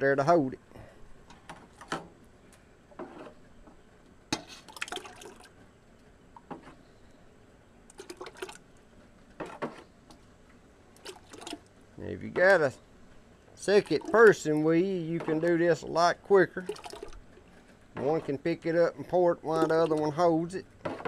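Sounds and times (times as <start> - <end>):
liquid splashing and trickling: 4.4 - 5.6, 7.9 - 9.7, 10.9 - 11.8, 13.6 - 14.8, 16.4 - 17.8, 19.5 - 20.2.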